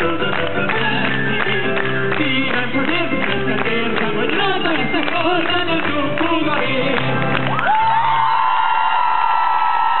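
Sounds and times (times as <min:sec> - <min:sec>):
backing music: 0:00.0 - 0:07.7
crowd noise: 0:00.0 - 0:10.0.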